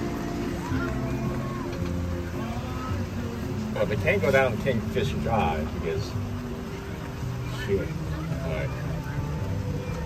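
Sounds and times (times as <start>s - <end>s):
faint voices: 0.0s - 10.0s
golf cart rumbling on dirt road: 0.0s - 10.0s.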